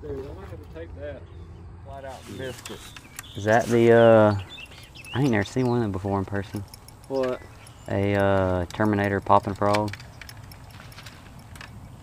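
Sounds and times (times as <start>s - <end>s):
low outdoor rumble: 0.0s - 12.0s
fishing tackle clicking: 4.6s - 12.0s.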